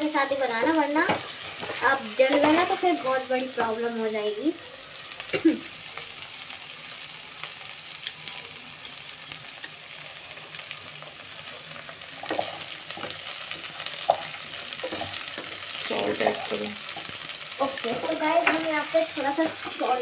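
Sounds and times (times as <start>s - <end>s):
food sizzling in a pot: 0.0s - 20.0s
wooden spatula scraping a pot: 17.7s - 20.0s.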